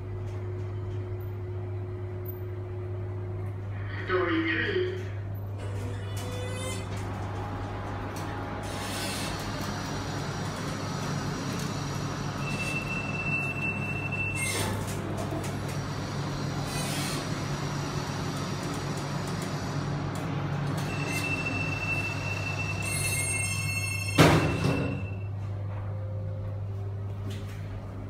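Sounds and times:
elevator low hum: 0:00.0 - 0:28.0.

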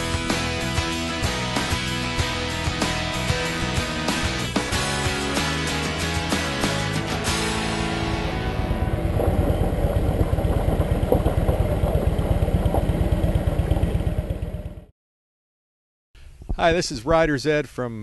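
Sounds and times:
background music: 0:00.0 - 0:09.9
motorcycle engine rumbling: 0:07.4 - 0:14.9.

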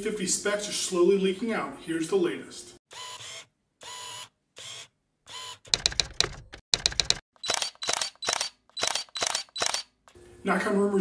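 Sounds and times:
mechanical clicking: 0:05.7 - 0:09.8.

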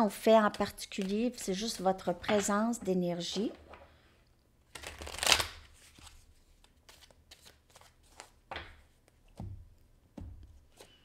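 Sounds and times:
cards being shuffled: 0:04.7 - 0:09.4, 0:10.6 - 0:11.0.

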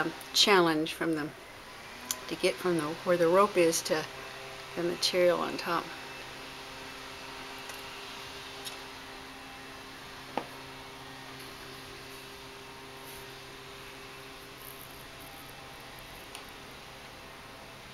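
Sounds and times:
steady low hum: 0:00.0 - 0:17.9.

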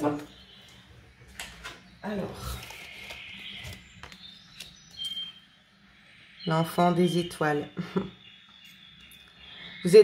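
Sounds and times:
cards rustling: 0:02.4 - 0:05.2.

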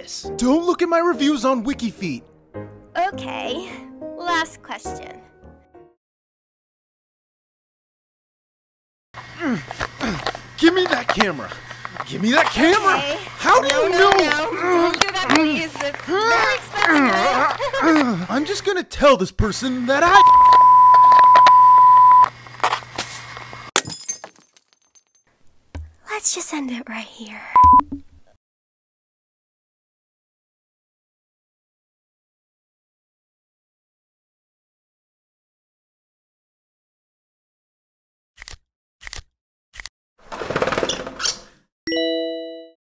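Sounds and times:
censor bleep tone: 0:20.2 - 0:22.3, 0:27.6 - 0:28.0
glass breaking crash: 0:23.8 - 0:25.2
bright bell-like ding: 0:41.9 - 0:42.8.

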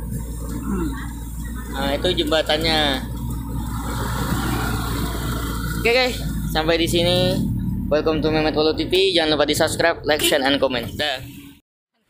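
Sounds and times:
road noise: 0:00.0 - 0:11.6
truck engine running: 0:00.0 - 0:11.6.

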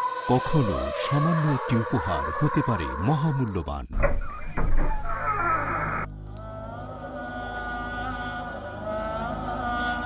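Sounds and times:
crickets chirping: 0:00.0 - 0:10.0
wavering musical drone: 0:06.2 - 0:10.0.

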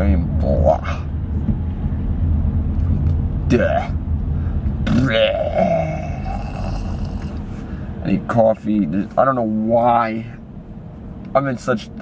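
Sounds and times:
car engine rumbling in cabin: 0:00.0 - 0:12.0.

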